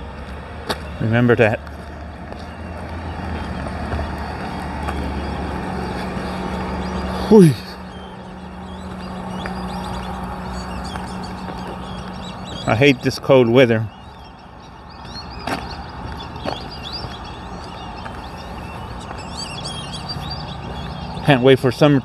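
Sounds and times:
vehicles running: 0.0s - 22.0s.

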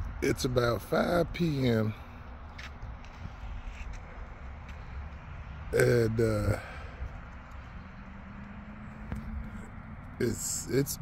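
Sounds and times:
faint footsteps: 2.1s - 5.7s, 6.8s - 10.2s.

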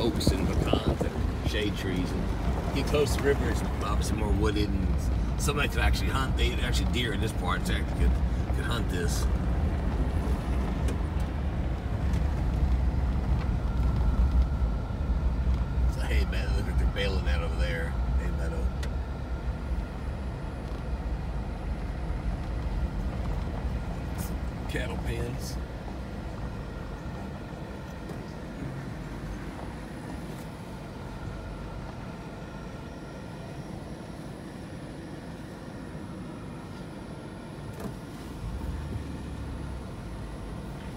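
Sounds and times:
faint thin steady whine: 0.0s - 40.9s
vehicle rumble on dirt road: 0.0s - 40.9s.

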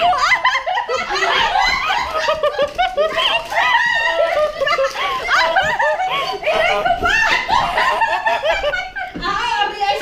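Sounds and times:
people laughing loudly: 0.0s - 10.0s.

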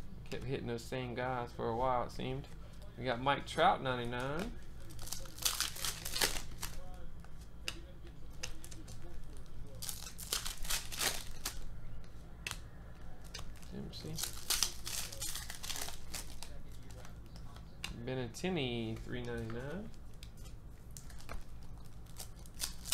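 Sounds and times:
low steady hum: 0.0s - 22.9s
foil wrappers crinkling and tearing: 4.2s - 7.0s, 8.4s - 11.7s, 13.2s - 17.6s, 19.2s - 22.9s.

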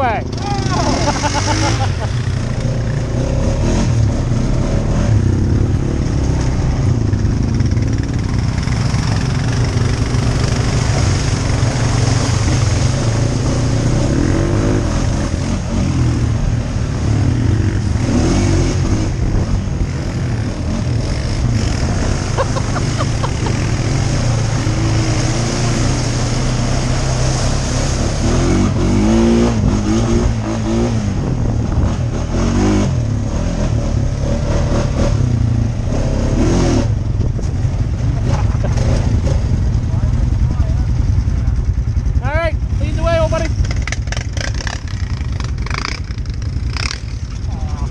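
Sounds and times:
atv engine rumbling: 0.0s - 47.9s.

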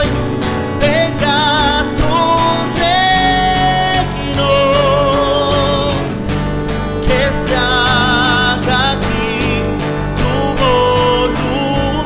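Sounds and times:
person singing: 0.0s - 6.3s, 6.9s - 12.0s
acoustic guitar: 0.0s - 12.0s
bass guitar: 0.0s - 12.0s
keyboard: 0.0s - 12.0s.

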